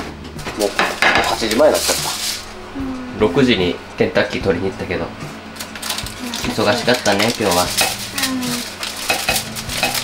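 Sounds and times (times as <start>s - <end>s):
dishes and cutlery clinking: 0.4s - 2.4s, 5.8s - 10.0s
wavering pitched sound: 1.9s - 7.0s.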